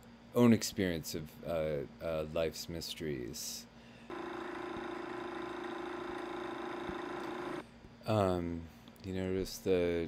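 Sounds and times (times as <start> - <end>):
steady machine-like hum: 0.0 - 8.9.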